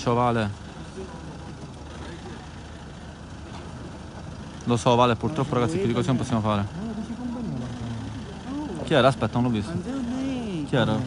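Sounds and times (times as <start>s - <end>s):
car engine idling: 0.0s - 11.0s
faint voices: 0.0s - 11.0s.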